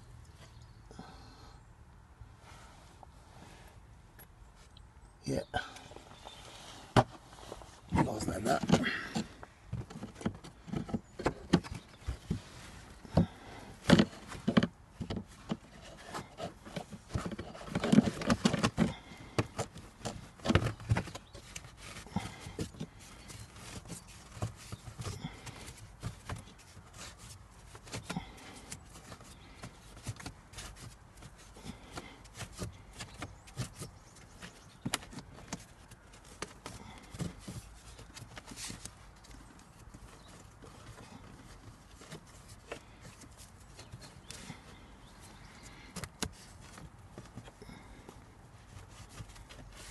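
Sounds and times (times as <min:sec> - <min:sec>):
filter clicking and scraping in housing: 0:13.8 - 0:33.9.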